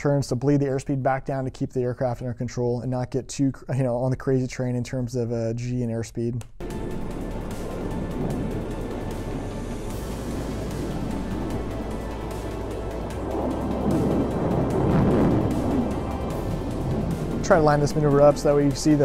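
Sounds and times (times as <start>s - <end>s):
background music: 6.5s - 19.0s
jet engines roaring: 6.7s - 19.0s.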